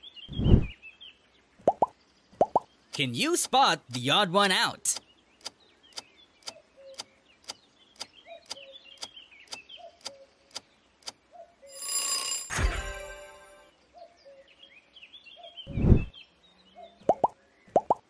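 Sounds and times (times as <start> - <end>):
bright bell-like chime: 11.7 - 13.7.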